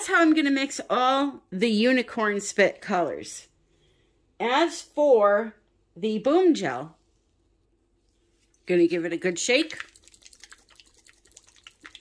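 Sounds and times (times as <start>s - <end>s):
bottle of liquid being shaken: 9.7s - 12.0s.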